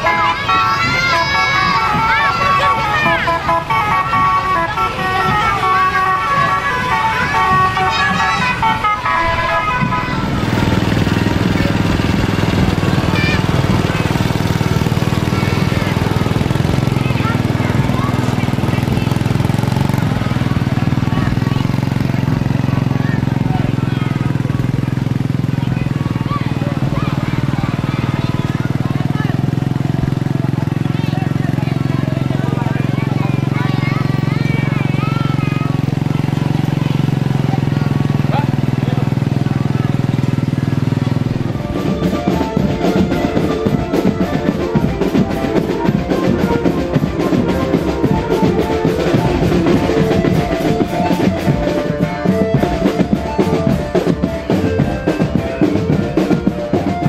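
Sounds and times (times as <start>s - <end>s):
tune-like tones: 0.0s - 24.5s
faint voices: 0.0s - 57.0s
small engine running steadily: 0.0s - 57.0s.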